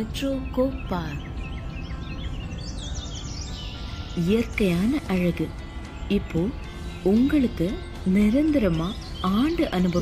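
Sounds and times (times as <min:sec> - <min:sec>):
birds chirping and whistling: 0:00.0 - 0:10.0.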